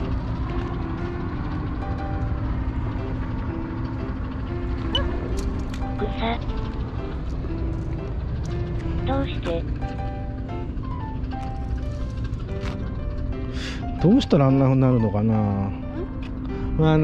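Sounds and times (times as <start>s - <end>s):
light background music: 0.0s - 17.0s.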